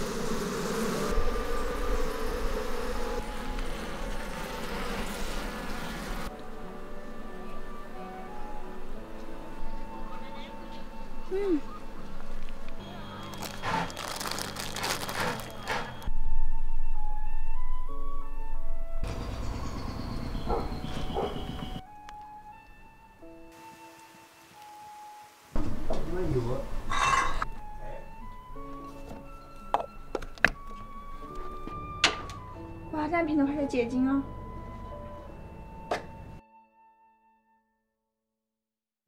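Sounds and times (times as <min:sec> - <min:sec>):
slow melody of held notes: 0:06.3 - 0:14.6, 0:16.1 - 0:21.0, 0:21.6 - 0:26.6, 0:27.4 - 0:37.5.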